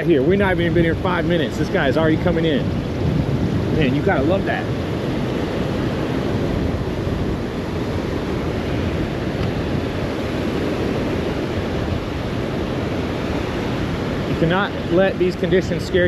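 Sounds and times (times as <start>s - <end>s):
surf breaking on beach: 0.0s - 16.0s
wind blowing across microphone: 0.0s - 16.0s.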